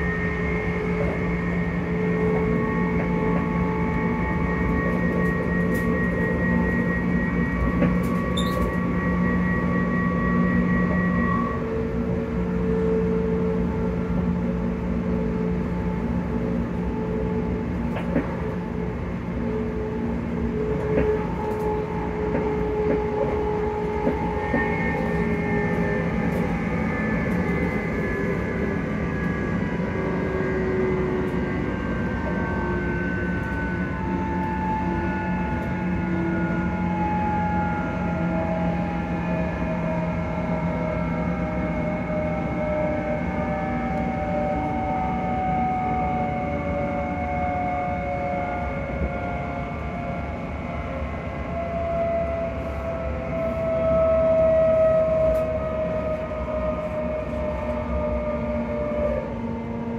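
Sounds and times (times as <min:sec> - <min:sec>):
traction motor whine: 0:00.0 - 0:59.9
train wheels rumbling: 0:00.0 - 0:59.9.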